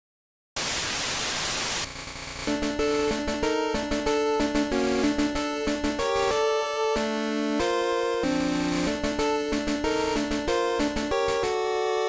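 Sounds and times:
static-like hiss: 0:00.6 - 0:02.5.

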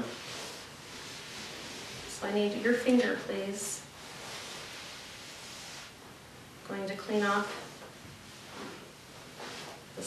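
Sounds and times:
faint wipe rustling: 0:00.0 - 0:06.4, 0:07.0 - 0:10.0.

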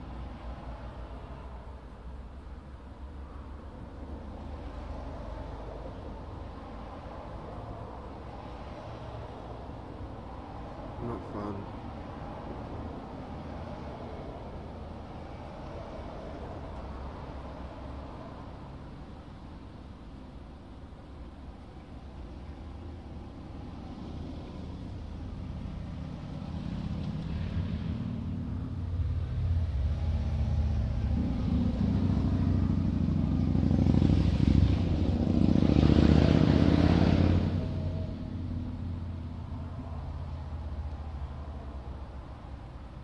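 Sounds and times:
motor vehicle passing by: 0:22.5 - 0:42.7.

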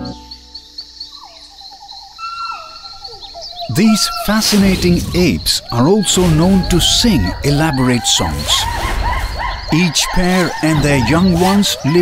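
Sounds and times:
insect chirping: 0:00.0 - 0:12.0
falling whistled calls: 0:00.8 - 0:12.0.

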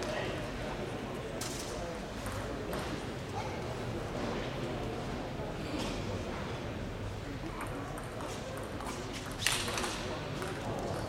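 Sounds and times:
low hall hum: 0:00.0 - 0:11.0.

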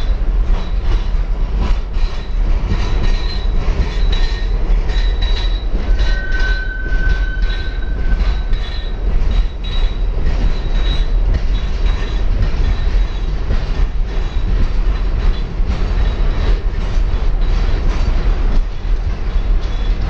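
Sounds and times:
train rumbling past: 0:00.0 - 0:20.0
train wheels clattering: 0:00.0 - 0:20.0
high wheel squeal: 0:03.1 - 0:11.2.

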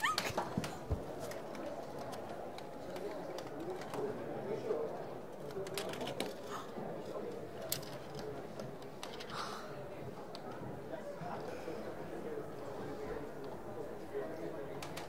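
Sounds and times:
crowd chatter murmur: 0:00.0 - 0:15.0.

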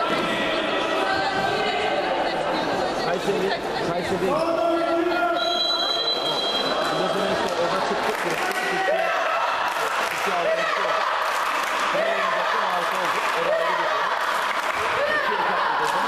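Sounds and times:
players and spectators shouting: 0:00.0 - 0:02.4, 0:08.4 - 0:16.0.

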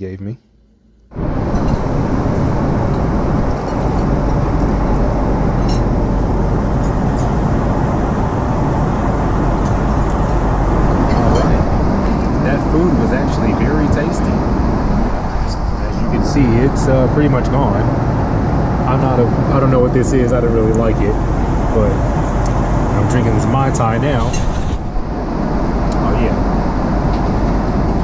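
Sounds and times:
airplane cabin engine and airflow rush: 0:01.1 - 0:28.0
faint voices: 0:10.8 - 0:14.6, 0:15.2 - 0:18.0, 0:25.9 - 0:26.4.

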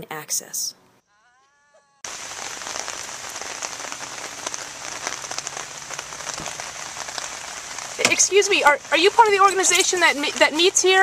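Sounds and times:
rain on a car: 0:02.1 - 0:11.0.

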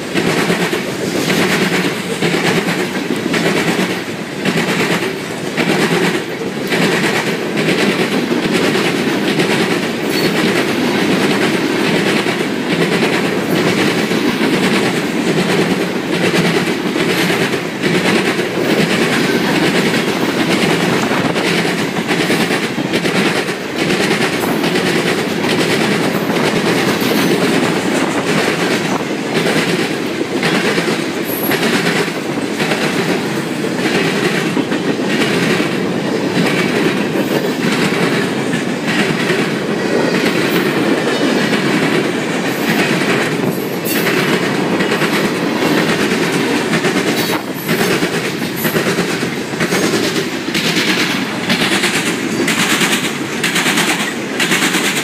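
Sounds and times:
train wheels rumbling on rail: 0:00.0 - 0:55.0
wheels clicking over rail joints: 0:00.0 - 0:55.0.

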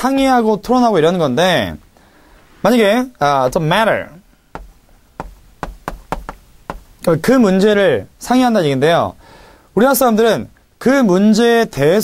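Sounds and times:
chalk tapping on chalkboard: 0:04.5 - 0:07.1.

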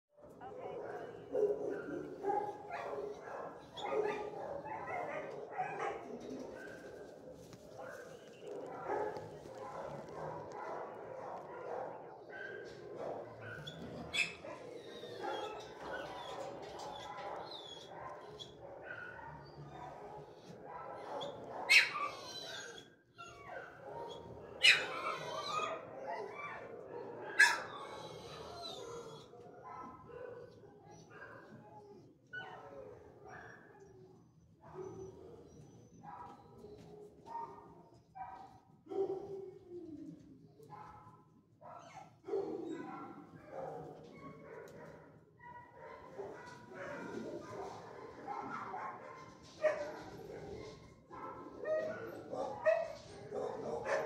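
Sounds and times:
dogs barking and whining: 0:00.2 - 0:54.0.

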